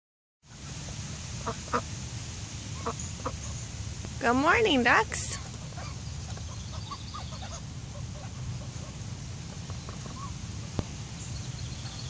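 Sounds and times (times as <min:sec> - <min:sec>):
low steady rumble: 0:00.5 - 0:12.0
ducks quacking softly: 0:01.4 - 0:01.9, 0:05.2 - 0:10.4.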